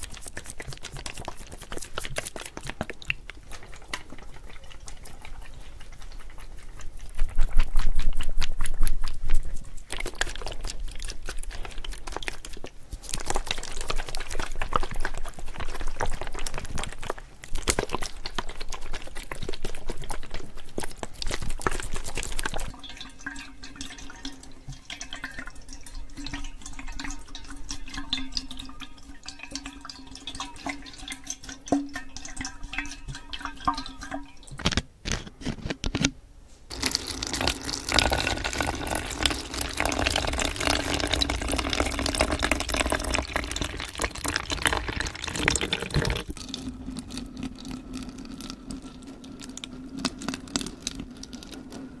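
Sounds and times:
plastic bottle crinkling: 0:00.0 - 0:22.8, 0:33.2 - 0:36.1, 0:36.7 - 0:46.6
small splashes and clicks: 0:00.0 - 0:34.8.

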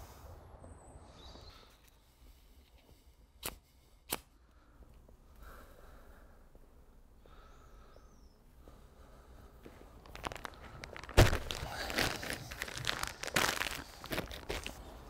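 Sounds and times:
plastic bag crinkling: 0:10.0 - 0:14.8.

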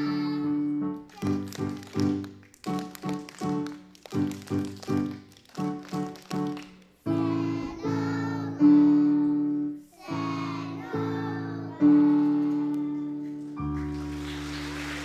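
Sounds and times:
children clapping: 0:01.0 - 0:07.0, 0:12.2 - 0:15.0.

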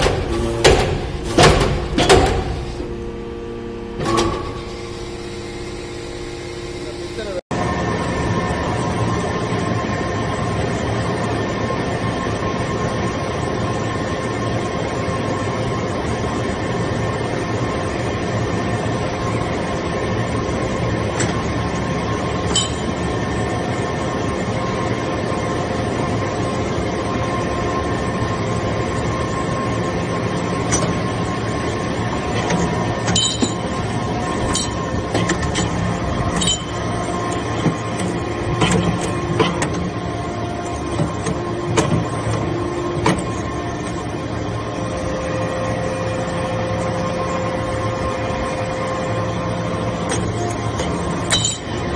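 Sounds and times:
hydraulic unit humming: 0:00.0 - 0:09.9, 0:18.1 - 0:51.9.

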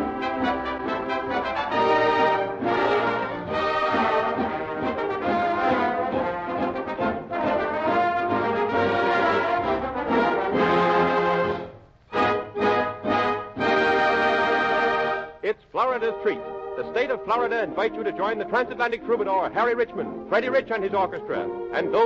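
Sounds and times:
dance orchestra with brass: 0:00.0 - 0:22.0.

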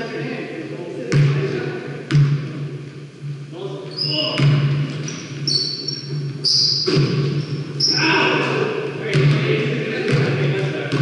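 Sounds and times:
basketball bouncing: 0:01.1 - 0:01.4, 0:02.1 - 0:02.6, 0:04.3 - 0:07.8, 0:09.1 - 0:11.0
sneakers squeaking on gym floor: 0:03.9 - 0:08.6.

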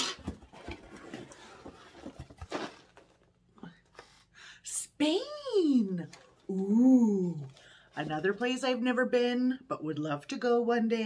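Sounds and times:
cardboard box being opened: 0:00.0 - 0:03.2.

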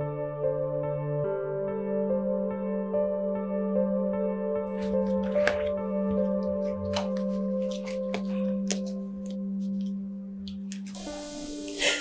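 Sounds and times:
sustained drone film music: 0:11.0 - 0:12.0.

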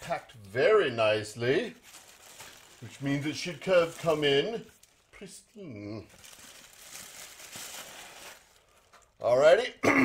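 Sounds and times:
packing material rustling: 0:00.0 - 0:05.4, 0:06.0 - 0:09.5.

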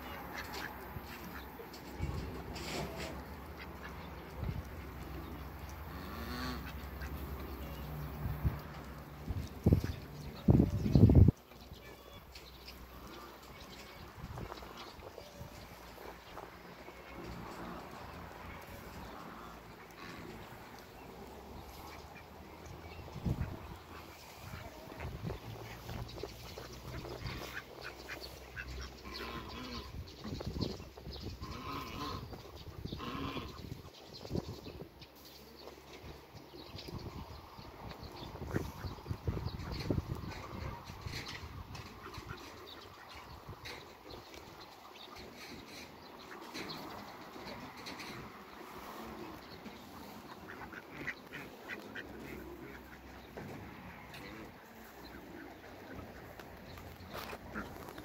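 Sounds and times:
ducks quacking: 0:00.0 - 0:33.8, 0:37.9 - 0:58.0
farm animal calls: 0:00.0 - 0:36.0, 0:36.8 - 0:58.0
pecking and rustling: 0:00.1 - 0:58.0.

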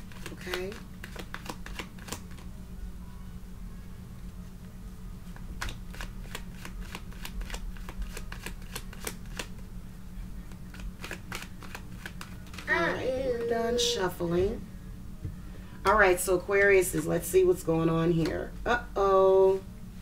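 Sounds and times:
cards being shuffled by hand: 0:00.0 - 0:02.5, 0:05.3 - 0:09.7, 0:10.4 - 0:13.5
low steady hum: 0:00.0 - 0:20.0.

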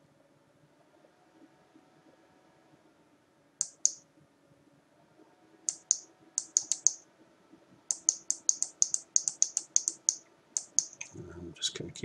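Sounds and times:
computer mouse clicking: 0:03.6 - 0:04.0, 0:05.7 - 0:07.0, 0:07.9 - 0:11.1.

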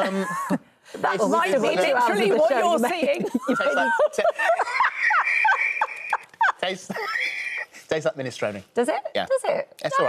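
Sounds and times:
people laughing: 0:00.0 - 0:07.7
high-pitched laugh: 0:03.3 - 0:07.7.

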